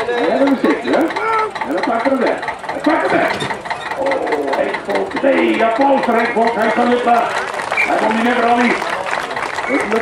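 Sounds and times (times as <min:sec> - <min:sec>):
men talking: 0:00.0 - 0:10.0
tractor engine idling: 0:00.0 - 0:10.0.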